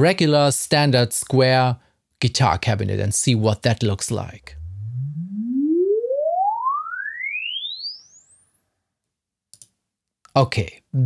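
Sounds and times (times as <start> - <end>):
sine sweep rising tone: 4.4 - 8.8.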